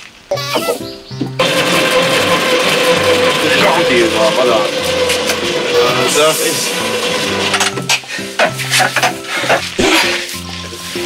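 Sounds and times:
background music: 0.3 - 11.0
exercise bike whirring: 1.4 - 9.6.

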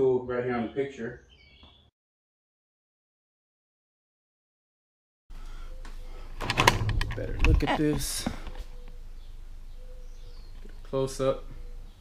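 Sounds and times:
faint high chirp: 8.5 - 12.0.

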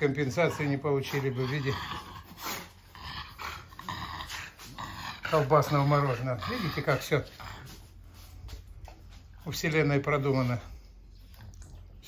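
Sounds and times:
dog panting and snuffling: 0.0 - 12.0.

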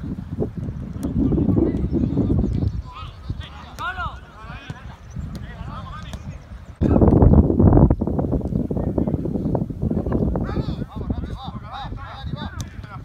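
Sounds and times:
wind rumble on microphone: 0.0 - 13.0
players shouting: 2.8 - 7.0
ball being kicked: 4.6 - 7.2.

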